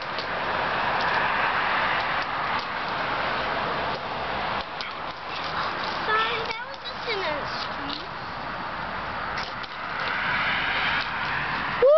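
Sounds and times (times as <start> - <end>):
road traffic hiss: 0.0 - 11.9.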